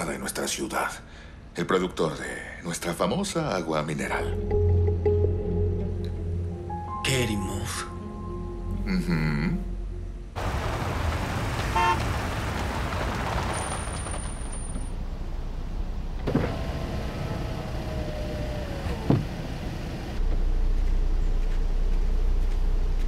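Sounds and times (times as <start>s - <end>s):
low engine rumble: 8.8s - 23.0s
power window motor whine: 16.2s - 20.2s
window stopping with a clunk: 18.6s - 19.5s.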